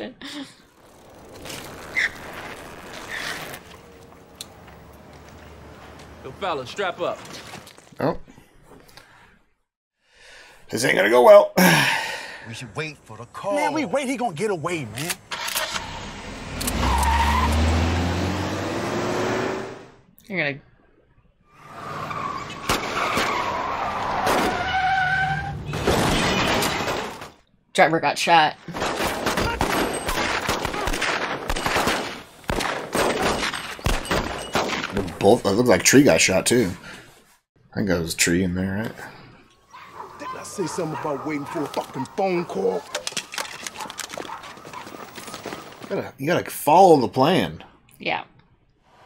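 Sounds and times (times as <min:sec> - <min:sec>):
car tyres skidding and squealing: 0:00.8 - 0:03.8, 0:15.3 - 0:19.9, 0:21.5 - 0:27.1
sharp cracks: 0:28.7 - 0:35.0
running footsteps on pavement: 0:42.8 - 0:45.9.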